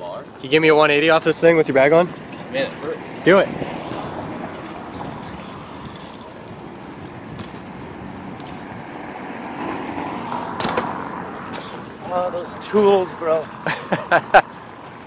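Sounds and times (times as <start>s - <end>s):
bicycles rolling on pavement: 0.0s - 15.0s
bike landing with sharp clack: 10.6s - 11.9s.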